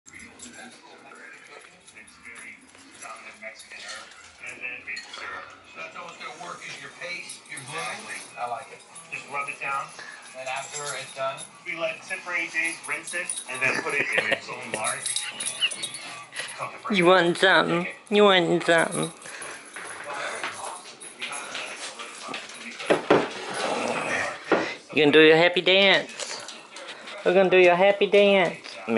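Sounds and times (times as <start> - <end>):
muffled voices: 0.1 - 28.9.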